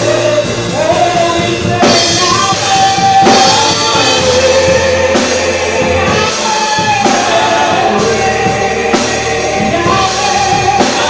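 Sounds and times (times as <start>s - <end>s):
drum and cymbal hits: 0.0s - 11.0s
drum kit: 0.0s - 11.0s
people singing gospel: 0.0s - 11.0s.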